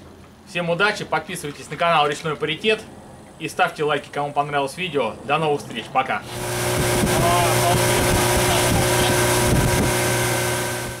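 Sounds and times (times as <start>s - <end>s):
boat motor running: 6.2s - 11.0s
wind on microphone: 6.3s - 11.0s.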